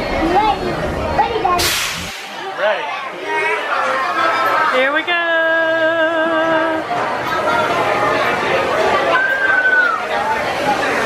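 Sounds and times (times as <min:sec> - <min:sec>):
voices: 0:00.0 - 0:11.0
air brakes hissing: 0:01.6 - 0:02.4.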